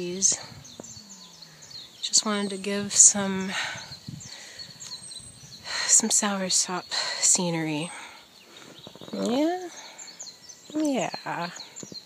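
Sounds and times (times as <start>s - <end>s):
faint bird chirps: 0.0s - 12.0s
person speaking: 10.7s - 11.6s.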